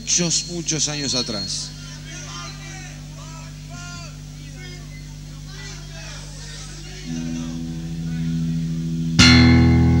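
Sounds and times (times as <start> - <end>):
faint voices calling out: 0.0 - 8.8
amplifier electric hum: 0.0 - 10.0.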